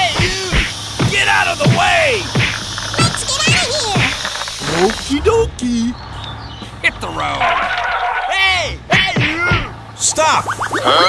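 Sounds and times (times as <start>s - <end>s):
cartoon sound effects: 1.6s - 5.1s, 7.2s - 11.0s
squeaky voice-like noises: 2.9s - 6.0s, 7.0s - 11.0s.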